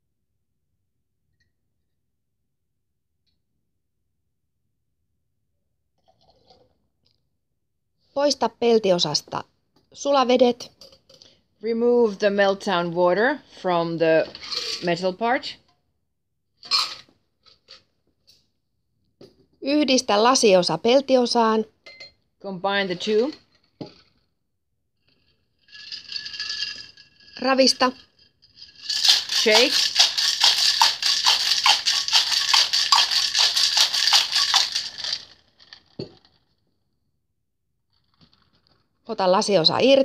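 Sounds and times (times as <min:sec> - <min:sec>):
ice rattling in metal tin: 0:14.3 - 0:15.0, 0:25.6 - 0:36.3
metal tin clinking: 0:16.6 - 0:17.0, 0:28.6 - 0:35.3.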